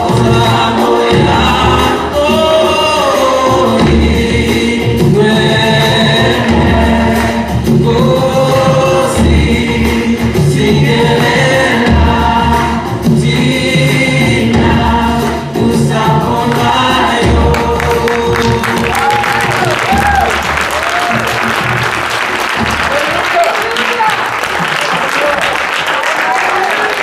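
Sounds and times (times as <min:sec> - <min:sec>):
gospel choir singing: 0:00.0 - 0:22.7.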